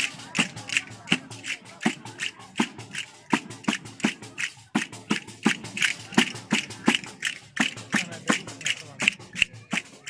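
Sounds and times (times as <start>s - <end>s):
frame drum with jingles: 0.0s - 10.0s.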